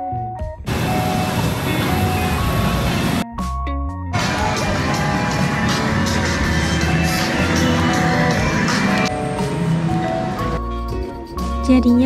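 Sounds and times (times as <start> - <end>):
background music with bass line: 0.0 - 1.1, 3.2 - 12.0.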